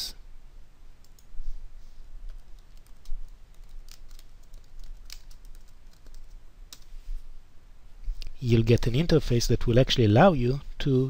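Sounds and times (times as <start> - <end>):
typing on computer keyboard: 2.3 - 6.8.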